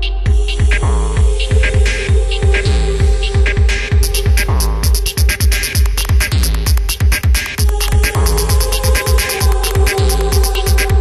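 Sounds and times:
electronic dance kick drum: 0.0 - 11.0
sharp high ticks: 4.0 - 11.0.

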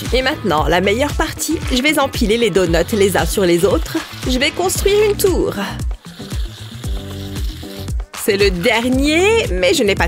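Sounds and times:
background music with beat: 0.0 - 10.0
aerosol whipped cream hissing: 3.8 - 9.3.

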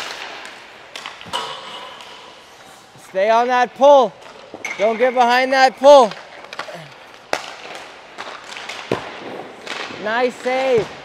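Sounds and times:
hockey stick cracking puck: 0.0 - 2.4, 4.2 - 11.0
puck thudding on goalie pads: 5.9 - 11.0.

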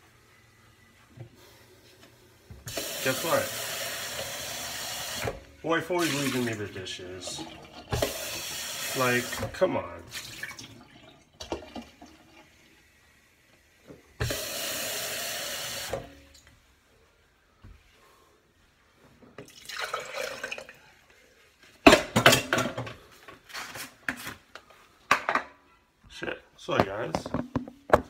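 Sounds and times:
kitchen tap running: 2.6 - 12.9, 14.1 - 16.3, 19.4 - 20.8.

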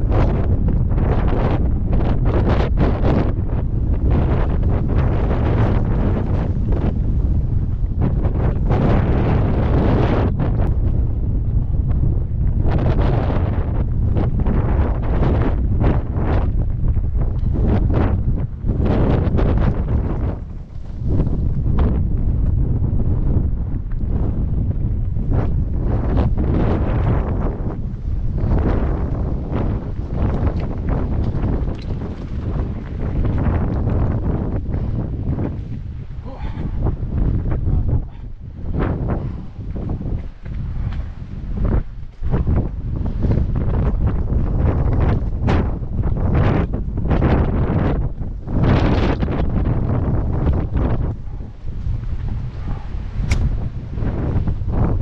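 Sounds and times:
wind buffeting microphone: 0.0 - 55.0
bike rattling over rocks: 27.0 - 34.5.

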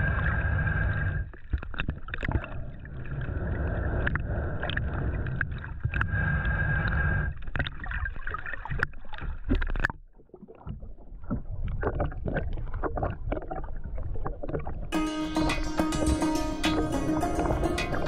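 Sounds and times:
underwater rumble of moving water: 0.0 - 14.9
underwater clicks and crackles: 0.2 - 14.9.

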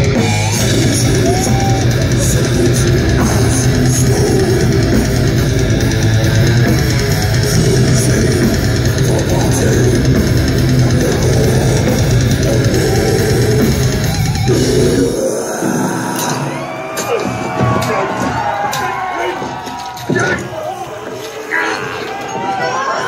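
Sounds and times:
death metal band playing: 0.0 - 23.0.

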